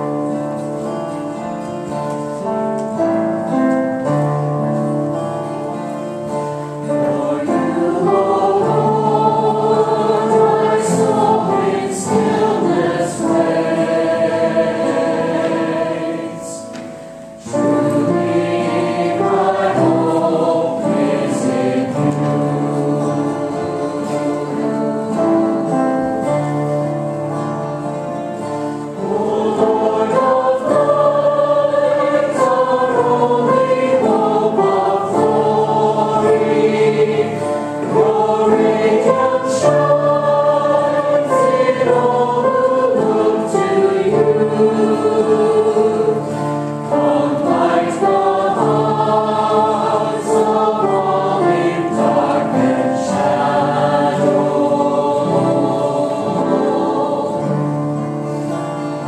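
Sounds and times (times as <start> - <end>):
choir singing a hymn: 0.0 - 59.0.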